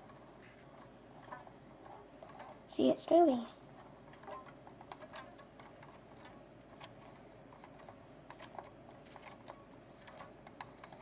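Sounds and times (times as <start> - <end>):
plastic pulley mechanism clicking: 4.1 - 11.0.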